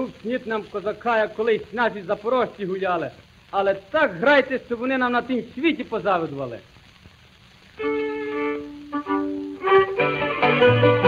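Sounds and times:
folk band with bass line: 0:06.9 - 0:11.0
fiddle playing long notes: 0:07.8 - 0:11.0.

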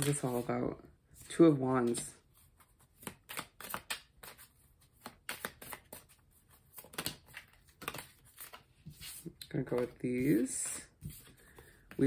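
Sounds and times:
cards being shuffled: 0:01.8 - 0:12.0.

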